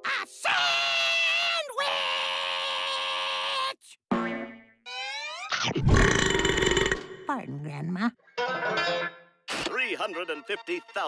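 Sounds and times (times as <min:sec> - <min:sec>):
cartoon wavering tones and glides: 0:04.3 - 0:06.0
long loud burp: 0:05.8 - 0:07.2.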